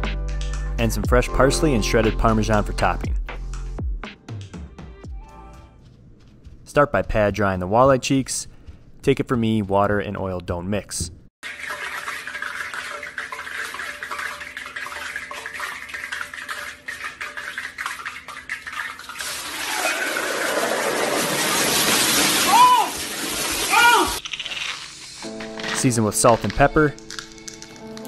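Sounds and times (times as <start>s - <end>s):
hot oil hissing and spattering: 19.2s - 25.4s
person yelling: 22.4s - 23.0s, 23.6s - 24.2s.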